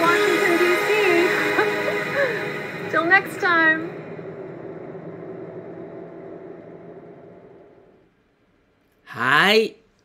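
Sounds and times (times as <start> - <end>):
car engine: 0.0 - 8.2.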